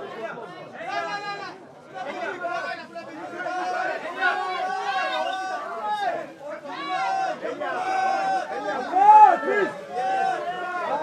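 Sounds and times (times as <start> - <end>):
photographers shouting calls: 0.8 - 11.0.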